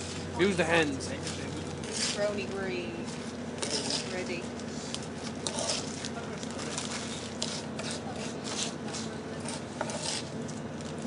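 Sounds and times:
grit scraping: 0.0 - 11.0
ship machinery hum: 0.0 - 11.0.

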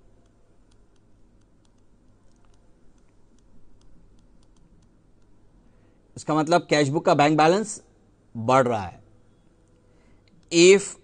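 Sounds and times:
stylus tapping on tablet screen: 0.0 - 5.4
low steady hum: 0.0 - 11.0.

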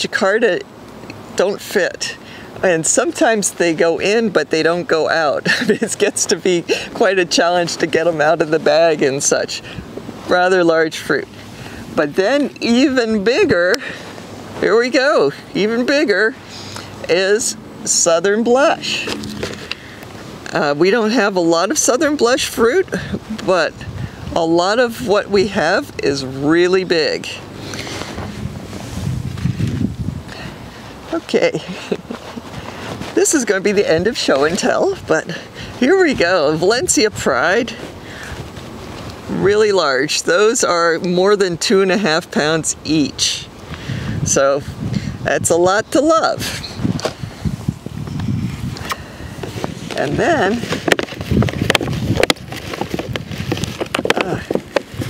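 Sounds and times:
wind blowing across microphone: 0.0 - 55.0.

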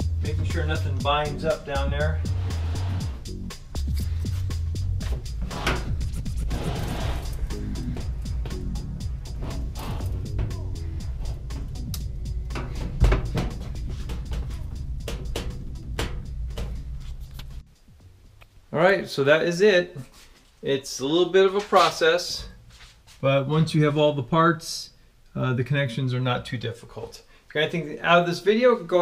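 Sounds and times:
background music with bass line: 0.0 - 18.8
knocks and bumps: 4.9 - 17.0.

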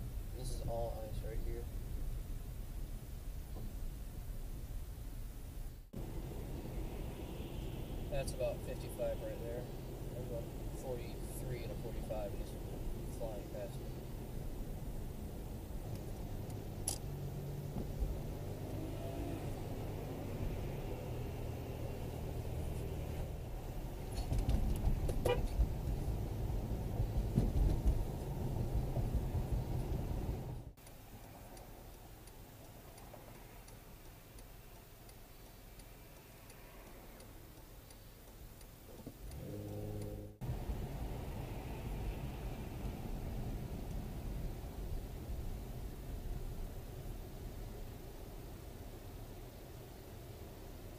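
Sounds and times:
car engine and tyre rumble: 0.0 - 50.9.

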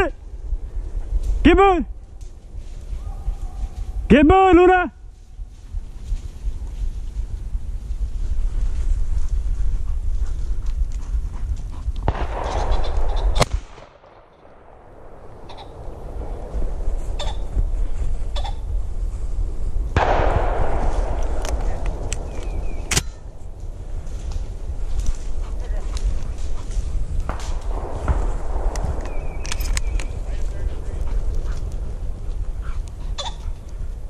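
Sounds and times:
wind rumble on microphone: 0.0 - 4.1, 5.0 - 34.0
shotgun shots: 12.1 - 16.5, 20.0 - 24.0, 27.3 - 30.4.

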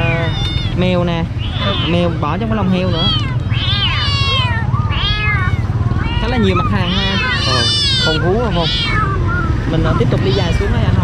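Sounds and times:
kittens meowing: 0.0 - 11.0.

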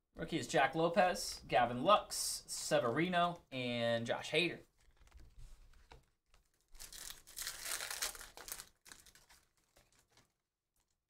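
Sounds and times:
foil pack tearing and crinkling: 6.8 - 10.4.

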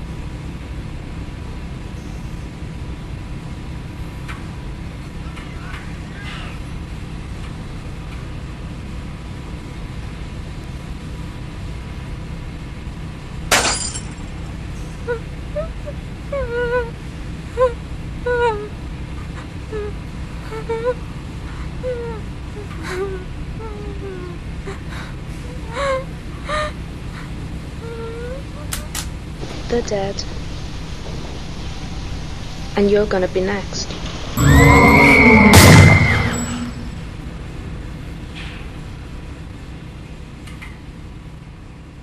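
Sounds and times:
glass shattering crash: 13.5 - 14.3, 34.4 - 37.0
low drone: 29.2 - 38.1.

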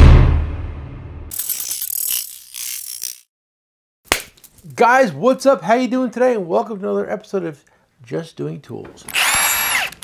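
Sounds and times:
ratchet wrench clicking: 1.3 - 3.3.

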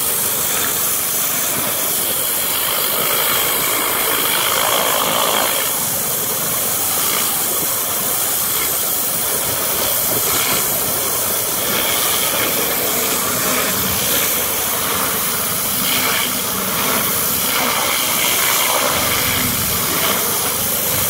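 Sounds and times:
pressure washer spraying paving: 0.0 - 21.0.

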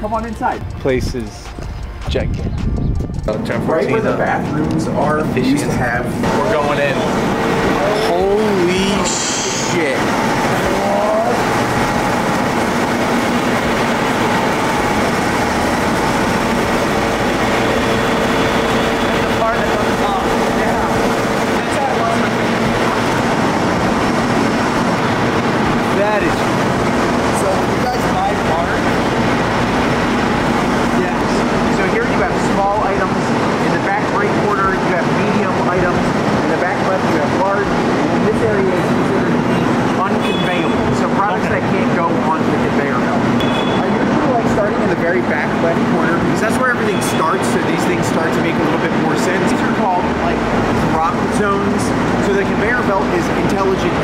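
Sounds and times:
continuous low hum: 0.0 - 54.0
conveyor machinery din: 0.0 - 54.0
indistinct voices: 0.0 - 54.0.

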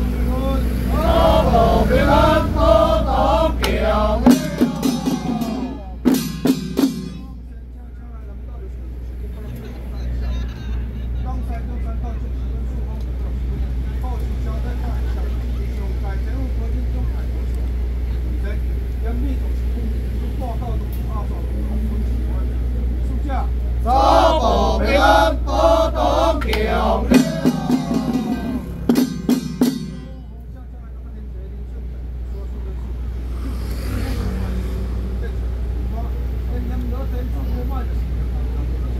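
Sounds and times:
group chanting: 0.8 - 6.1, 23.8 - 30.0
crowd murmur: 0.8 - 6.3, 23.7 - 30.3
handheld drums struck: 3.6 - 7.5, 26.4 - 30.4.

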